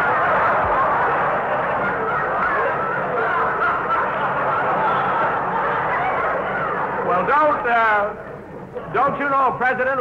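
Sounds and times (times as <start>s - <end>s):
audience laughing: 0.0s - 7.6s.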